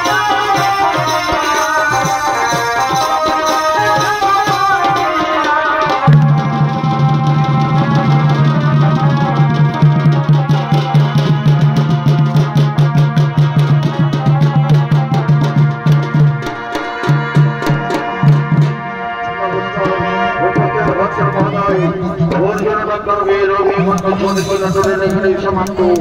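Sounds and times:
fast dhol drumming: 0:00.0 - 0:18.9, 0:24.0 - 0:26.0
shehnai wavering melody: 0:00.0 - 0:26.0.

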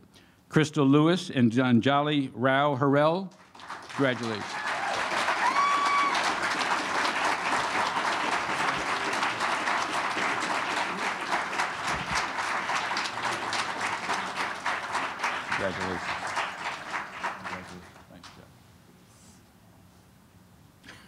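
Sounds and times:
audience applauding: 0:03.3 - 0:18.5
person whooping: 0:04.4 - 0:06.4.

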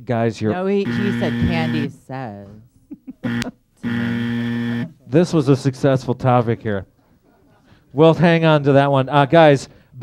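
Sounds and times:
game-show buzzer: 0:00.6 - 0:02.0, 0:03.2 - 0:05.0.

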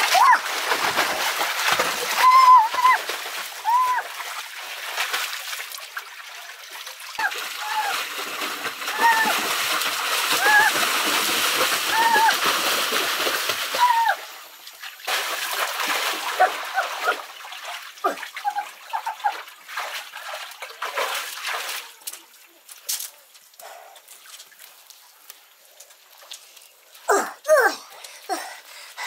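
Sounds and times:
water splashing from swimming: 0:00.0 - 0:22.8.

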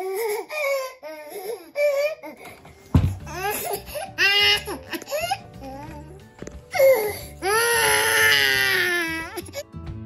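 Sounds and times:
infant crying: 0:00.0 - 0:02.5, 0:03.3 - 0:09.6
music: 0:02.4 - 0:10.0.

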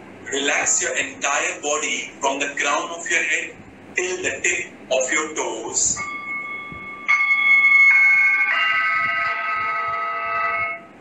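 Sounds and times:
sustained musical chord: 0:06.0 - 0:10.9.

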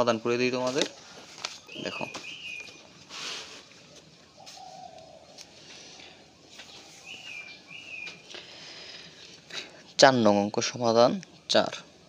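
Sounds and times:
pigeon cooing: 0:04.3 - 0:09.7.

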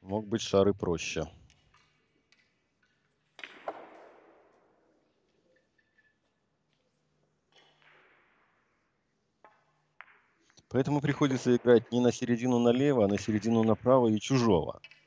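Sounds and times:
billiard balls clacking: 0:09.4 - 0:15.0.

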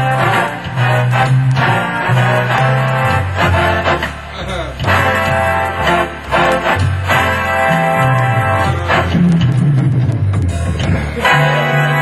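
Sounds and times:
organ bass line: 0:00.0 - 0:12.0
organ playing swing music: 0:00.0 - 0:12.0
organ rhythm accompaniment: 0:00.0 - 0:12.0.

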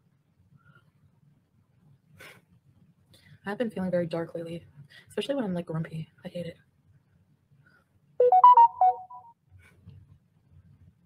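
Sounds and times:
electronic notification chime: 0:08.2 - 0:09.2.

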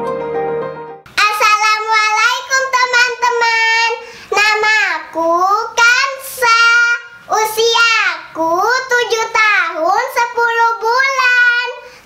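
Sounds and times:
girl singing: 0:01.2 - 0:12.0.

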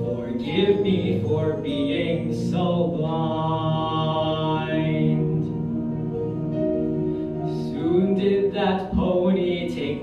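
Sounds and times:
man singing a long note: 0:00.0 - 0:06.0, 0:07.5 - 0:10.0.

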